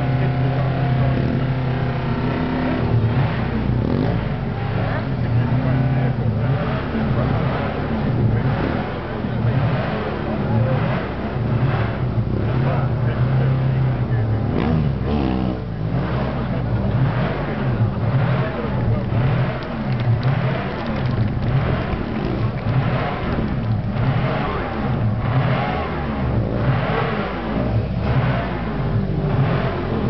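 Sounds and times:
motorcycle engine revving: 0:00.0 - 0:30.0.

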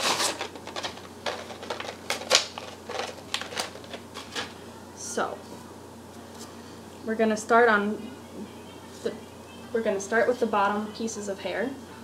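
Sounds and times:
plastic packaging crinkling: 0:00.0 - 0:04.6.

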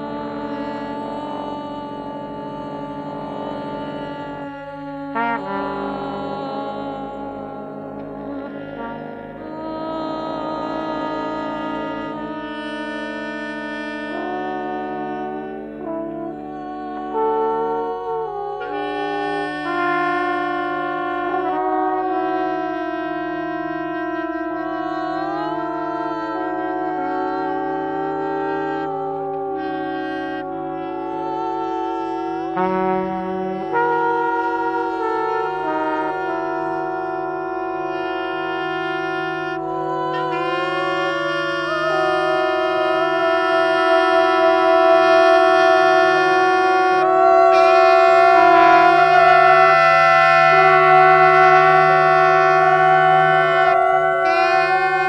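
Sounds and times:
bass clarinet: 0:00.0 - 0:55.0
flugelhorn: 0:00.0 - 0:55.0
person singing long notes: 0:00.0 - 0:55.0
trombone: 0:00.0 - 0:55.0
wind instruments holding long notes: 0:00.0 - 0:55.0.

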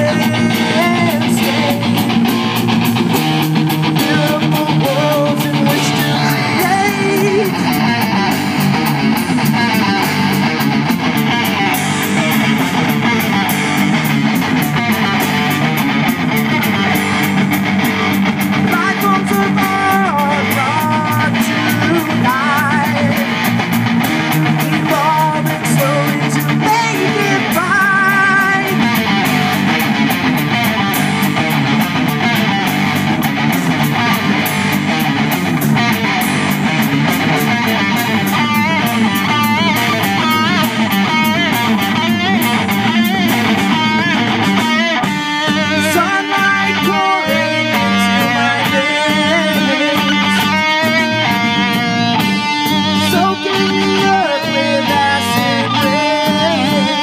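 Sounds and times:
person singing: 0:00.0 - 0:02.6, 0:03.8 - 0:08.4, 0:18.6 - 0:23.6, 0:24.4 - 0:29.7, 0:44.9 - 0:57.0
bass guitar: 0:00.0 - 0:57.0
drum kit: 0:00.0 - 0:57.0
electric guitars: 0:00.0 - 0:57.0
high wavering lead guitar line: 0:00.0 - 0:57.0.

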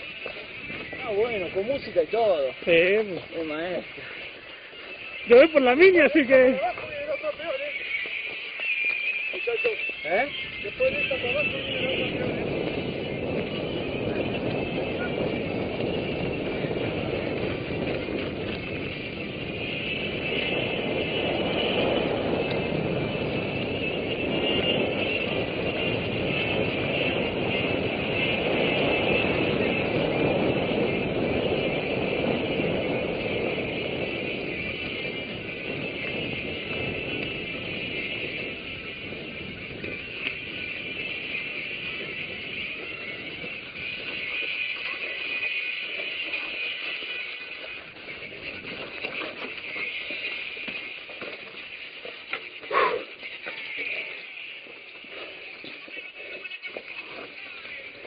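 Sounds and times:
bike rolling over dirt: 0:00.0 - 0:58.0
wind noise: 0:00.0 - 0:58.0.

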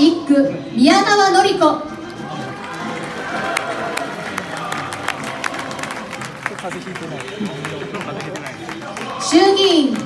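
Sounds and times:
crowd murmur: 0:01.8 - 0:10.0
scattered hand claps: 0:02.0 - 0:10.0.

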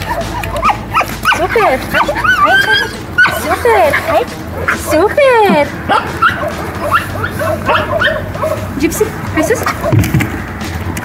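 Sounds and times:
dog yipping and whining: 0:00.0 - 0:05.1, 0:05.9 - 0:08.7.

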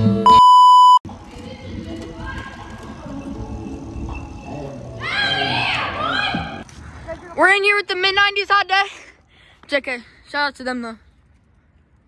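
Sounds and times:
electronic beep tone: 0:00.2 - 0:01.0.

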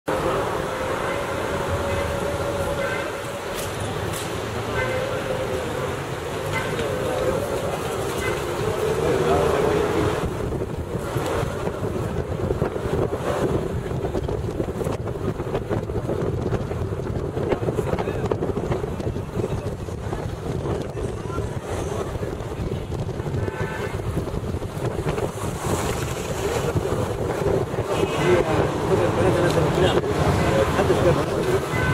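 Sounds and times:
car engine: 0:00.0 - 0:23.4
road noise: 0:00.0 - 0:31.9
voices: 0:00.1 - 0:13.0, 0:17.4 - 0:24.1, 0:26.5 - 0:31.9
wind noise: 0:00.1 - 0:31.9.

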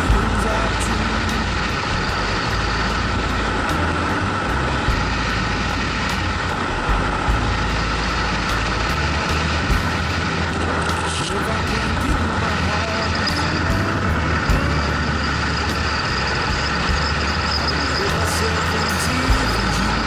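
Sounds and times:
motorcycle engine: 0:00.0 - 0:20.0.

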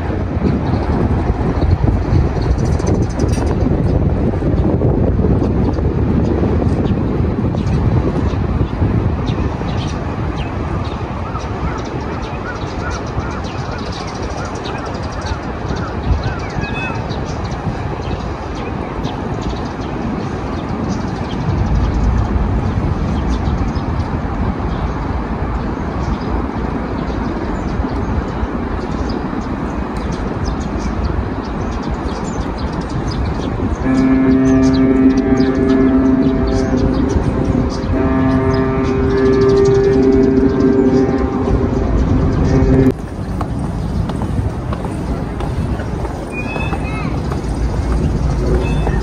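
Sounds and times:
wind rumbling on microphone: 0:00.0 - 0:49.0
held pitched tones: 0:33.9 - 0:43.0.

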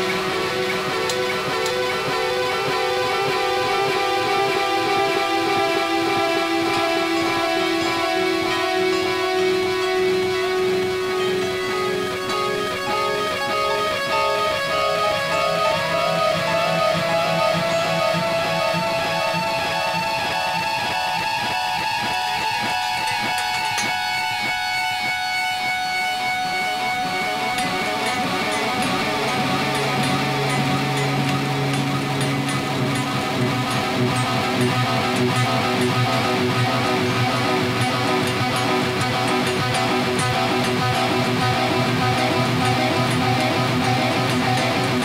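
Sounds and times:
electric guitar with stacked delays: 0:00.0 - 0:45.0.

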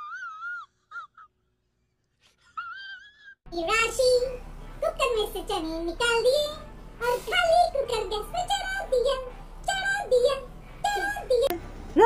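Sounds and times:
high-pitched wailing cry: 0:00.0 - 0:01.3, 0:02.4 - 0:03.4.

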